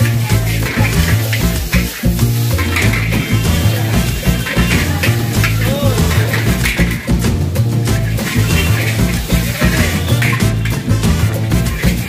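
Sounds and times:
background music with bass line: 0.0 - 12.0
food sizzling in a pan: 0.0 - 12.0.

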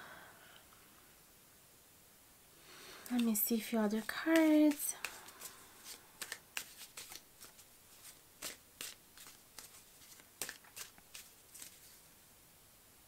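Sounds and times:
cards being shuffled: 3.1 - 12.1.

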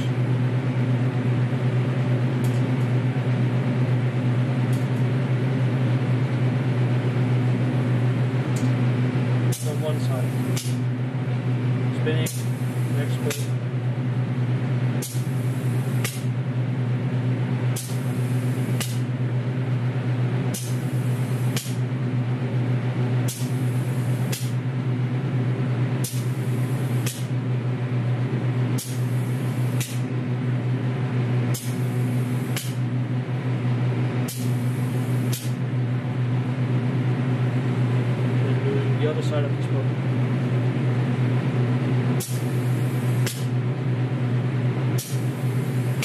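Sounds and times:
machine and fan humming: 0.0 - 46.0
aerosol can spraying in pulses: 31.6 - 32.8, 34.3 - 35.6, 42.2 - 43.5.

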